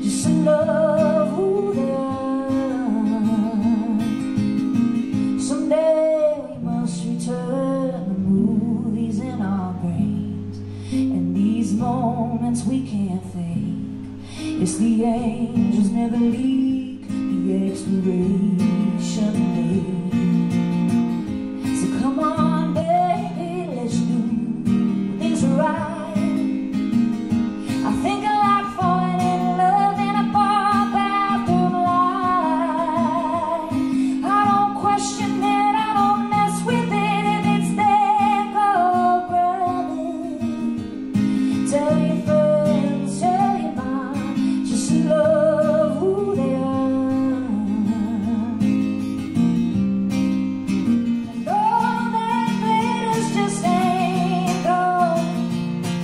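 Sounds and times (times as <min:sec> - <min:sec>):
woman singing with vibrato: 0:00.0 - 0:49.2, 0:51.1 - 0:56.0
strummed acoustic guitar: 0:00.0 - 0:56.0.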